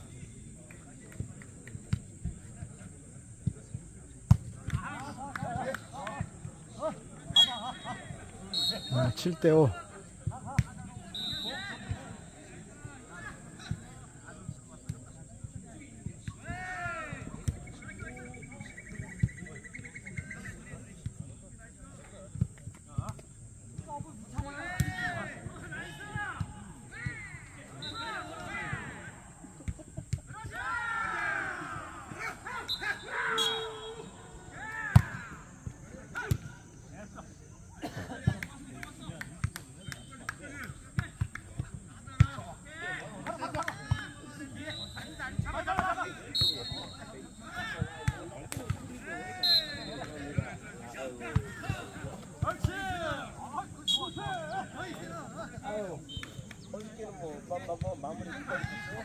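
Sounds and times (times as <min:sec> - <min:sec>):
players shouting: 0:04.8 - 0:10.0, 0:10.8 - 0:13.4, 0:24.4 - 0:29.6, 0:30.2 - 0:36.4, 0:41.8 - 0:56.2, 0:58.2 - 0:59.0.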